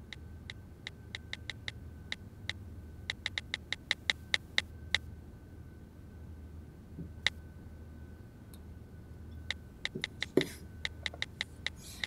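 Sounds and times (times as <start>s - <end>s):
smartphone typing clicks: 1.2s - 1.8s, 3.1s - 4.7s, 9.5s - 12.0s.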